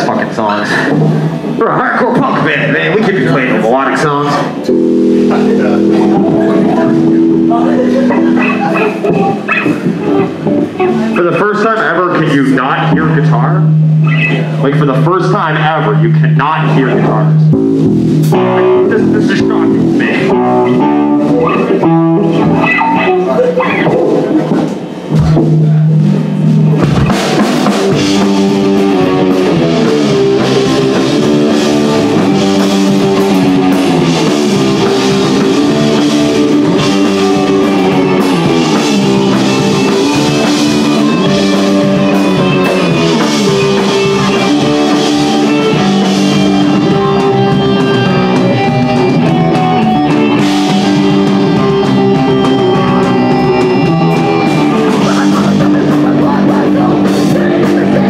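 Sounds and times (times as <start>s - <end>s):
punk band playing live: 0.0s - 58.0s.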